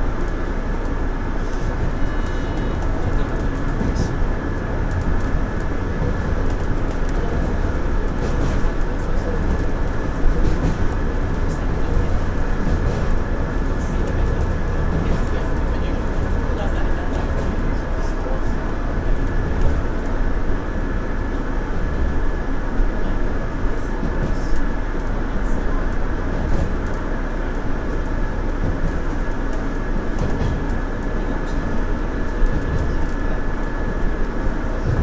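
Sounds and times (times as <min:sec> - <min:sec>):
train wheels rumbling on rail: 0:00.0 - 0:35.0.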